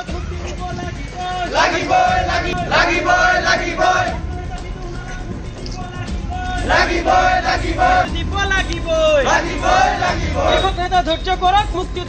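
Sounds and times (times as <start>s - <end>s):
men shouting slogans together: 0.8s - 10.8s.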